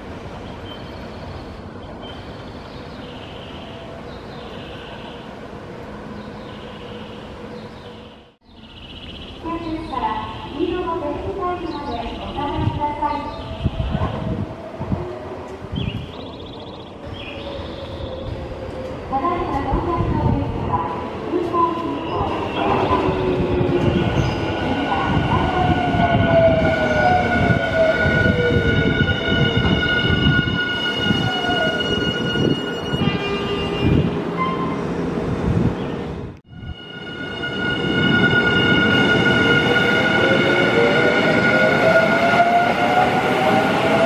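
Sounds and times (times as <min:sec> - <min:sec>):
high squeal: 0:26.9 - 0:33.4, 0:36.5 - 0:42.7.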